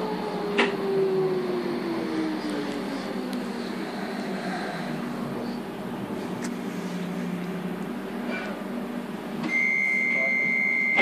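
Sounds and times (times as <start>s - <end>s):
train running hum: 0.0s - 9.5s.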